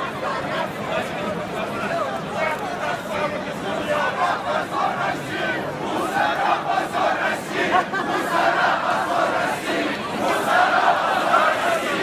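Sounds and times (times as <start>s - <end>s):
crowd of protesters shouting: 0.0s - 12.0s.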